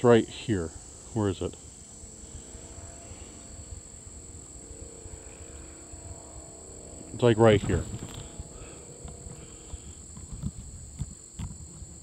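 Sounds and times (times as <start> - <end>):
insects buzzing: 0.0 - 12.0.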